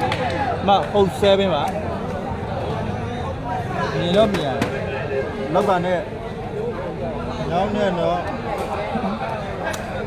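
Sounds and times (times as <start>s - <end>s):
large crowd noise: 0.0s - 10.0s
men talking and calling out: 0.0s - 10.0s.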